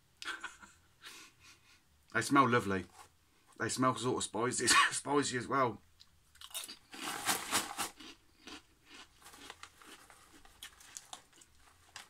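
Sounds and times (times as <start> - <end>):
person crunching crisp snack: 6.3 - 12.0.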